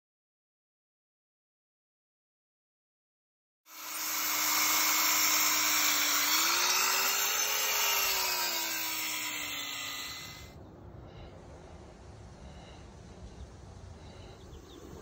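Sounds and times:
circular saw cutting asphalt: 0:03.7 - 0:10.6.

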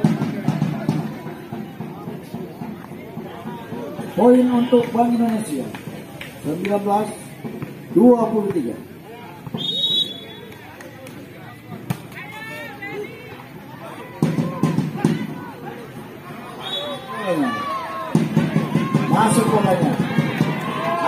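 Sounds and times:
crowd voices and shouts: 0:00.0 - 0:21.0
referee's whistle blasts: 0:09.6 - 0:10.5, 0:16.6 - 0:17.2.

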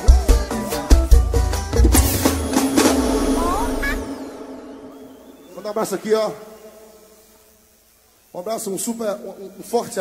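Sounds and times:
live band final hit: 0:00.1 - 0:06.2
high falling sweep: 0:01.9 - 0:07.3.

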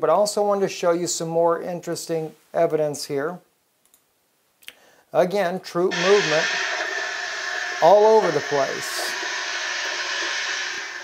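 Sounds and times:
background hiss: 0:00.0 - 0:11.0
faint high whine: 0:05.9 - 0:11.0.

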